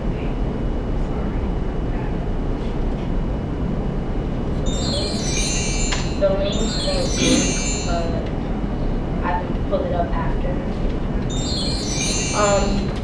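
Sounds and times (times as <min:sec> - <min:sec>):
low room rumble: 0:00.0 - 0:13.0
high ringing tones: 0:04.5 - 0:08.9, 0:11.3 - 0:13.0.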